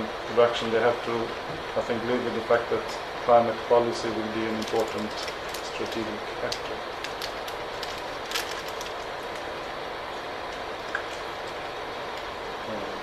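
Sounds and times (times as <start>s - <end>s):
room noise hiss: 0.0s - 13.0s.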